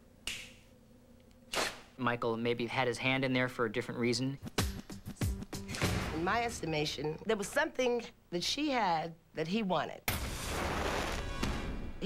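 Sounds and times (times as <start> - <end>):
faint steady hum: 0.0 - 10.1
finger snaps: 0.2 - 0.6.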